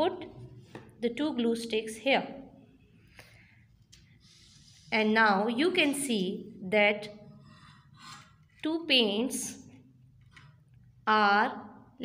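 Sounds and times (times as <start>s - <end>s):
woman speaking: 1.0s - 2.5s, 4.9s - 7.2s, 8.6s - 9.6s, 11.1s - 11.8s.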